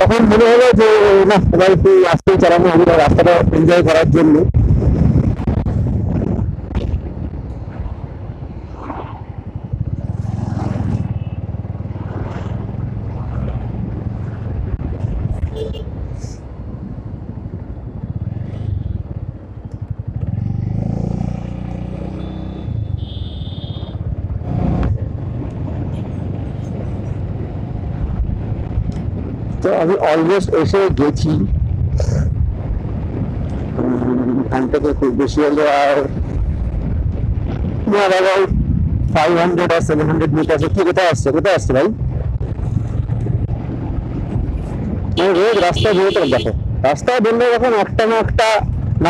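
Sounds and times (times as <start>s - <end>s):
motorcycle engine running: 9.2s - 29.6s, 42.0s - 49.0s.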